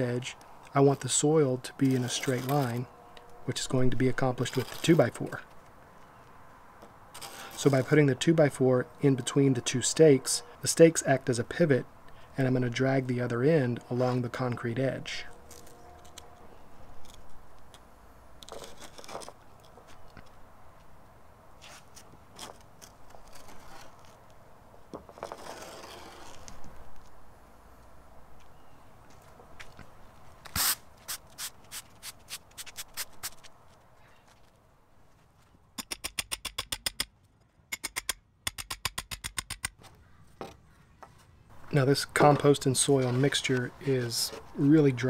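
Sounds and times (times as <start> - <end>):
board scraping over soil: 1.8 - 2.8, 4.2 - 5.3, 7.1 - 8.0, 18.5 - 19.4, 21.6 - 24.2, 25.0 - 26.8, 42.1 - 44.9
rapid even clicking: 37.7 - 39.8.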